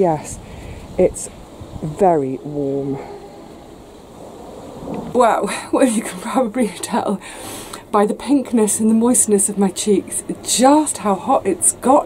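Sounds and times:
wind noise on microphone: 0:00.0 - 0:06.4.

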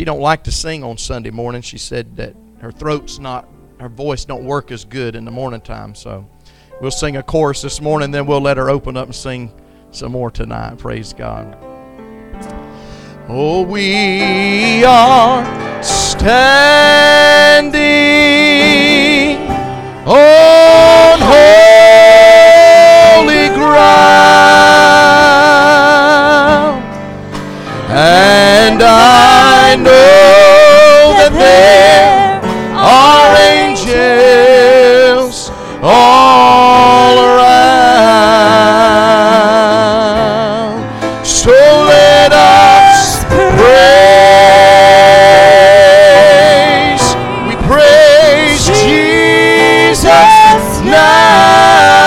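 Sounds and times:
man singing gospel: 0:00.0 - 0:11.6, 0:13.1 - 0:27.0, 0:27.6 - 0:52.0.

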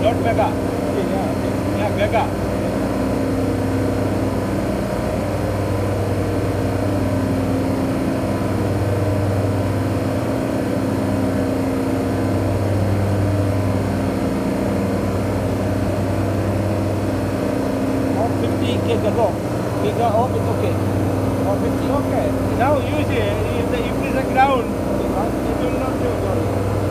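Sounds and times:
low hum of machinery: 0:00.0 - 0:26.9.

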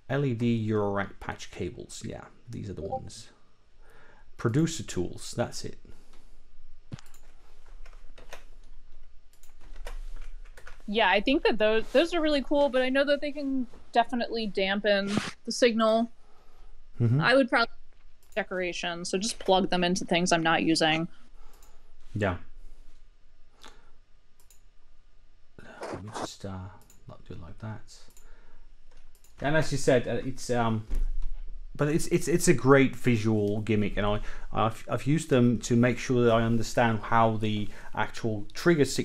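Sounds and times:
man speaking: 0:00.1 - 0:03.3, 0:04.4 - 0:05.8, 0:17.0 - 0:17.2, 0:22.2 - 0:22.4, 0:25.6 - 0:28.1, 0:29.4 - 0:30.9, 0:31.8 - 0:39.0.

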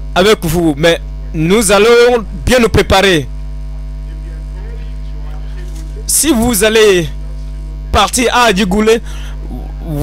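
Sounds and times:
electrical mains hum: 0:00.0 - 0:10.0
faint voices: 0:03.9 - 0:06.2.

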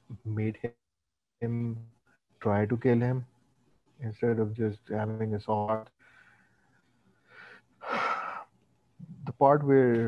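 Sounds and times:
person breathing: 0:06.0 - 0:08.5.

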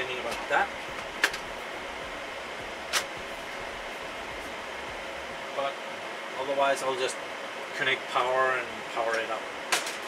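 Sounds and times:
server cooling fans rushing: 0:00.0 - 0:10.0.

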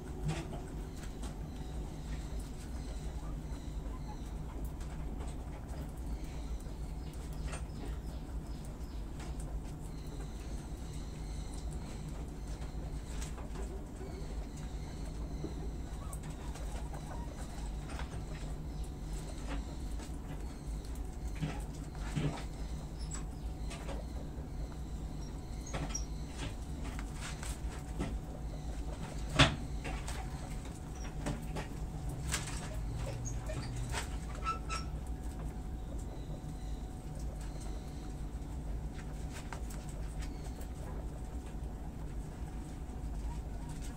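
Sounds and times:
small animals chewing greens: 0:00.0 - 0:43.9.

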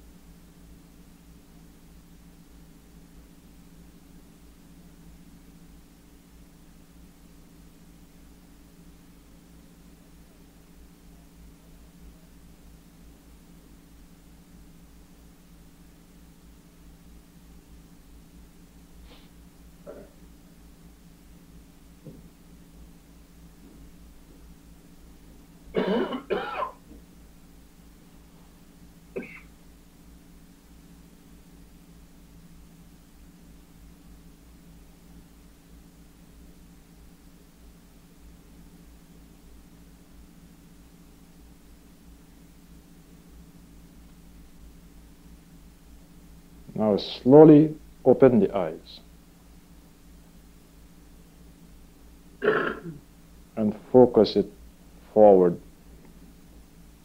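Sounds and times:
steady low hum: 0:00.0 - 0:57.0
person clearing throat: 0:19.8 - 0:20.2, 0:25.8 - 0:26.8, 0:29.2 - 0:29.5, 0:52.4 - 0:53.0.

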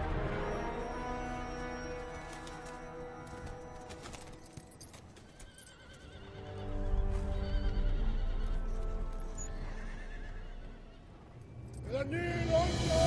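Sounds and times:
orchestral film music: 0:00.0 - 0:13.0
horses whinnying: 0:02.8 - 0:11.4.

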